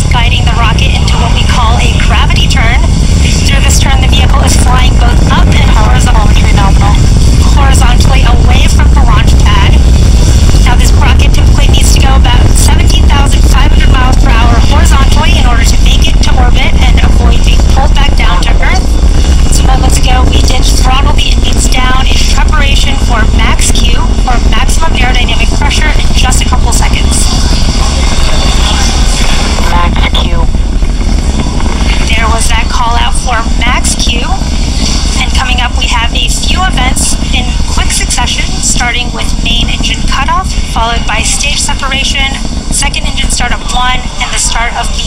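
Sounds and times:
indistinct voices: 0:00.0 - 0:09.9, 0:10.5 - 0:30.6, 0:31.8 - 0:45.0
distant rocket engine rumble: 0:00.0 - 0:45.0.

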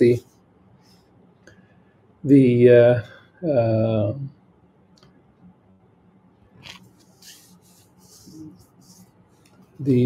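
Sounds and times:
man saying uh: 0:02.3 - 0:04.3.

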